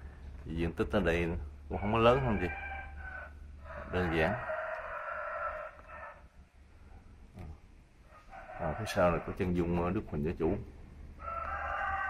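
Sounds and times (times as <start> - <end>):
rooster crowing: 1.8 - 6.3, 8.1 - 9.5, 11.2 - 12.0.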